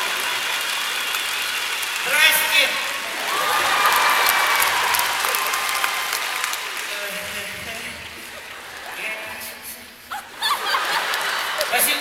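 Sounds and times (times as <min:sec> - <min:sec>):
audience applauding: 0:00.0 - 0:09.6, 0:10.4 - 0:12.0.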